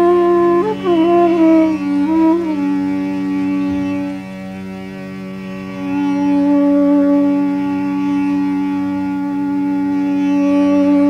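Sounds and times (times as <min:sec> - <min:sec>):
bamboo flute long note: 0:00.0 - 0:04.4, 0:05.8 - 0:11.0.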